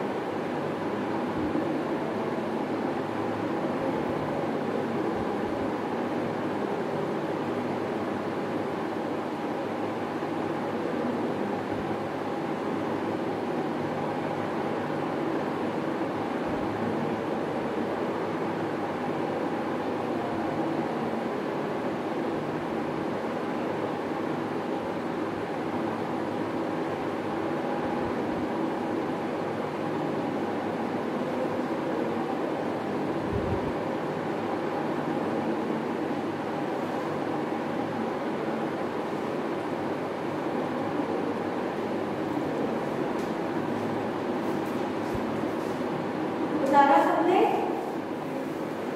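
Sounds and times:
steady machine hum with hiss: 0.0 - 48.9.

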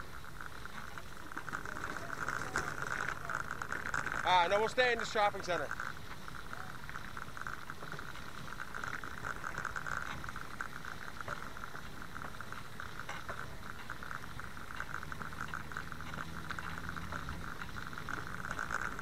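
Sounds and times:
bicycle rattling ticks: 0.0 - 19.0.

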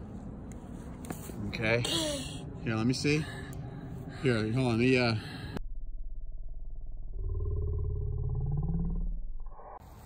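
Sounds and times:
low rasping growl: 7.1 - 9.2.

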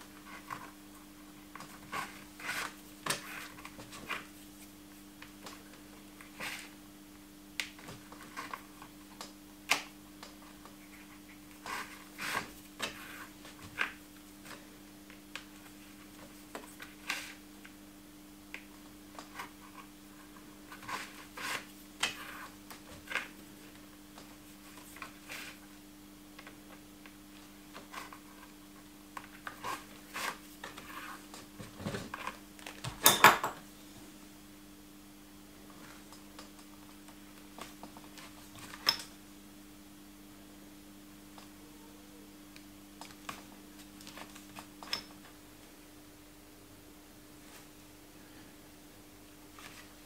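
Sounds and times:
faint steady hum: 0.0 - 50.0.

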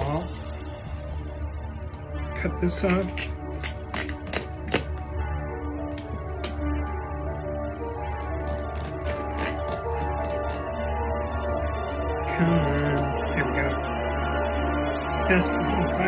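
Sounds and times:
background music with held notes: 0.0 - 16.0.

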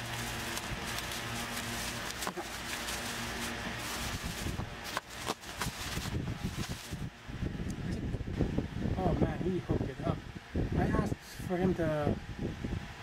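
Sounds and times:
rustling packing in a box: 0.0 - 7.1.

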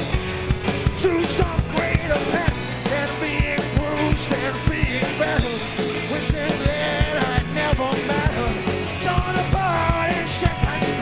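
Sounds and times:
drum kit steady beat: 0.0 - 11.0.

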